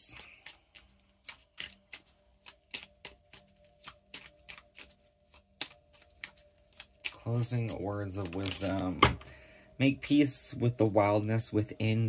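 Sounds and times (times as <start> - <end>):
cards being shuffled: 0.0 - 9.1.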